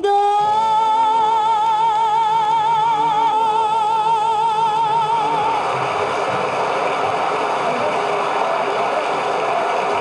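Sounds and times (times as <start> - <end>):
audience applause: 3.9 - 10.0.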